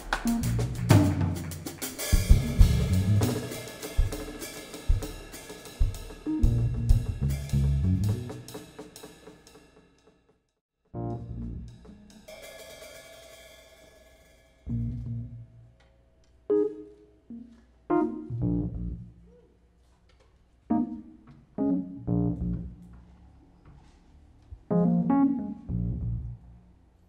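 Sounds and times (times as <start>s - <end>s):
piano chords with low notes: 0.0s - 1.1s, 2.2s - 3.6s, 5.8s - 8.5s, 11.0s - 12.0s, 16.5s - 19.2s, 20.7s - 22.9s, 24.6s - 26.5s
cymbal wash: 11.9s - 14.8s.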